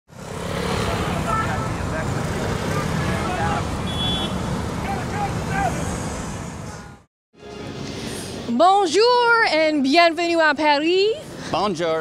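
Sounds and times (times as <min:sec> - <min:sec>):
road traffic: 0:00.1 - 0:12.0
voices of passers-by: 0:00.1 - 0:12.0.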